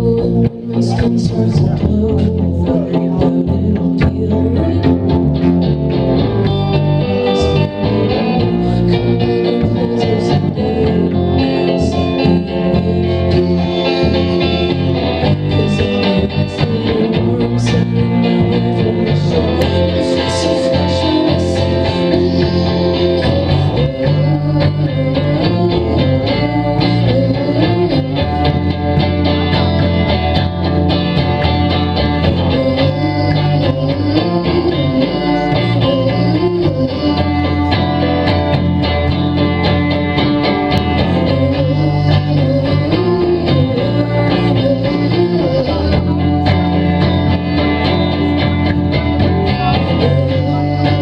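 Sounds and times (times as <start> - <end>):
bass guitar: 0.0 - 51.0
electric guitar lines: 0.0 - 51.0.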